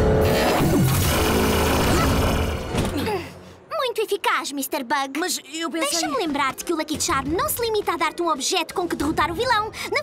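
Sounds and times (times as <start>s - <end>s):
loud noisy sound effect: 0.0s - 2.8s
dramatic cartoon action music: 0.0s - 3.0s.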